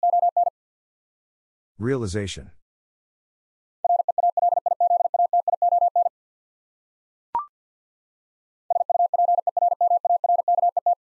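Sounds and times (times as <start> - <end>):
morse code beeps: 0.0 - 0.5, 3.9 - 6.1, 8.7 - 11.0.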